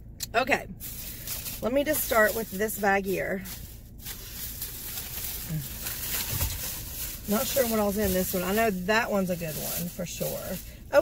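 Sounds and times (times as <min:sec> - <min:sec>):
plastic bag rustling: 0:00.8 - 0:11.0.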